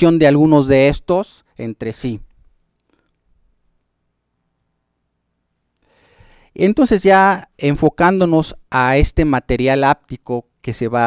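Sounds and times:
person speaking: 0:00.0 - 0:02.5, 0:06.5 - 0:11.0.

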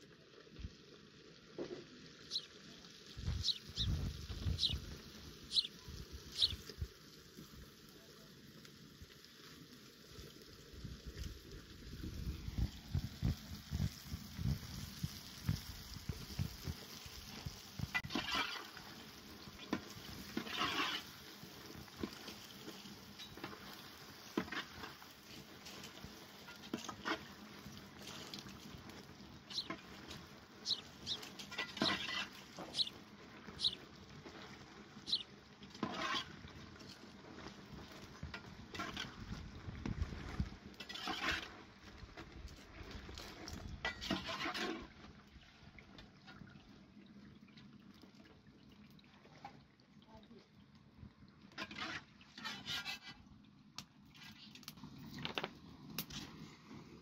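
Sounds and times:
dough frying in oil: 0:00.0 - 0:57.0.

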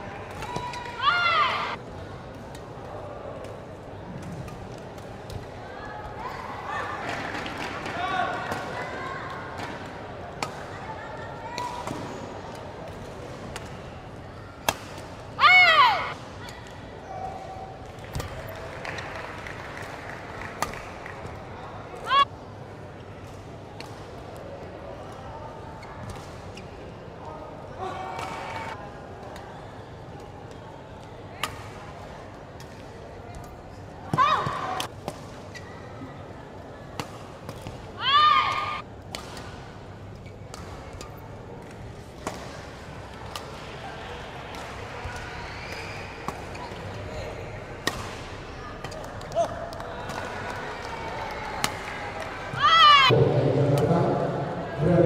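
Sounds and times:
racket striking shuttlecock: 0:47.8 - 0:50.3.

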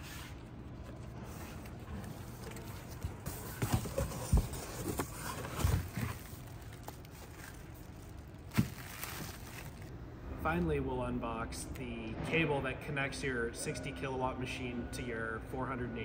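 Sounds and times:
knocks and handling noises: 0:00.4 - 0:09.9
plastic-wrapped cable handling: 0:01.6 - 0:09.9.

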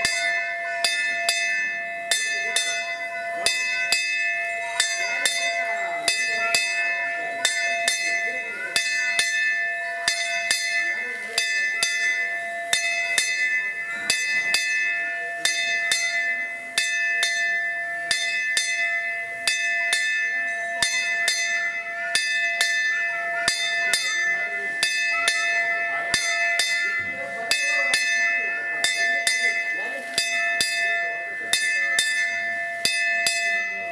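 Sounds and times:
hand bell ringing: 0:00.0 - 0:33.9.

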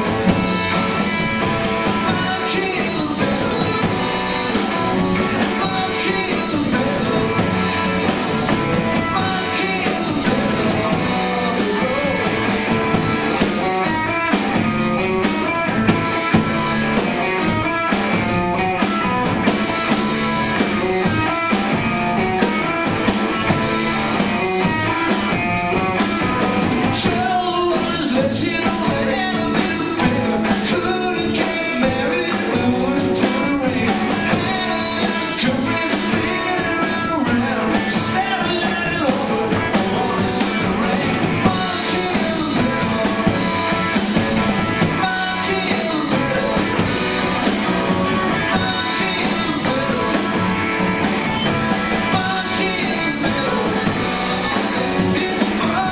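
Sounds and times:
drum kit beat: 0:00.0 - 0:55.9
electric bass: 0:00.0 - 0:55.9
electric guitar: 0:00.0 - 0:55.9.

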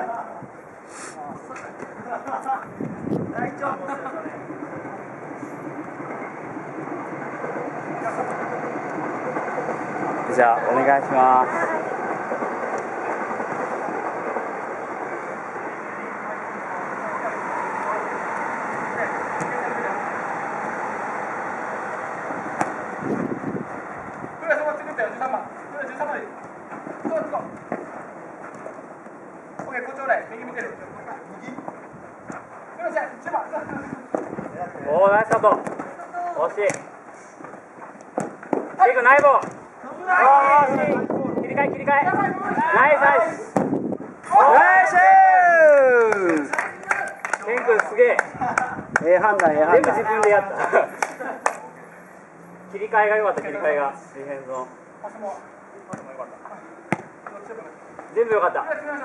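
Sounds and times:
players shouting and chattering: 0:00.0 - 0:31.8, 0:32.4 - 0:59.0
short hiss: 0:00.8 - 0:01.2
ball being kicked: 0:43.5 - 0:43.8, 0:56.9 - 0:57.2
players shouting: 0:44.2 - 0:47.6.

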